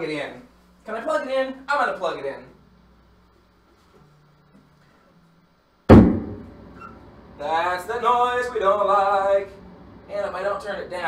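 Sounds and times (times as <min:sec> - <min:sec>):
faint amplifier buzz: 0:00.0 - 0:11.0
amplifier plug-in thump: 0:05.9 - 0:06.7.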